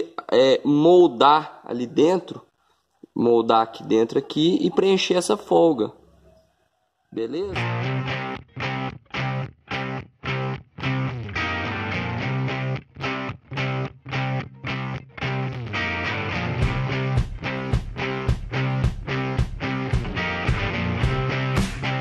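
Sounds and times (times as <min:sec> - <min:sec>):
electric guitar chopped chords: 0:07.5 - 0:22.0.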